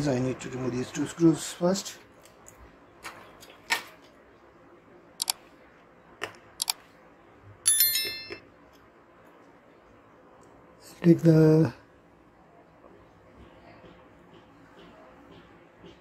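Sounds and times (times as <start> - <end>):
bright bell-like chime: 7.7 - 8.4.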